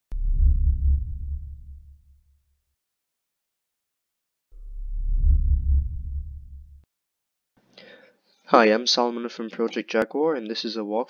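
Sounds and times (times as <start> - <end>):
deep bass boom: 0.1 - 2.1, 4.6 - 6.9.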